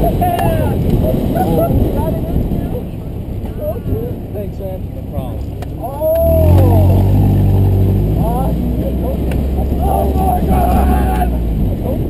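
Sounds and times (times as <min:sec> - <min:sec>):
car engine running: 0:00.0 - 0:12.0
person shouting excitedly: 0:05.8 - 0:07.3, 0:09.7 - 0:11.4.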